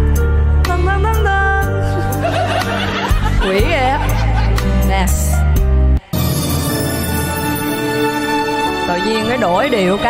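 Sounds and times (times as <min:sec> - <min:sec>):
slow ballad music: 0:00.0 - 0:10.0
woman laughing into microphone: 0:02.0 - 0:04.9.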